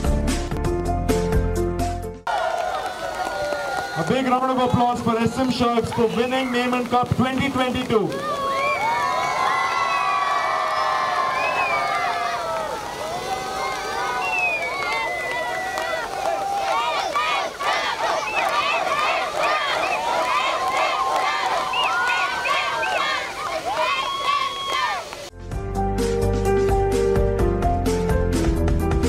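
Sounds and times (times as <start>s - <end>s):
crowd cheering and shouting: 2.3s - 25.3s.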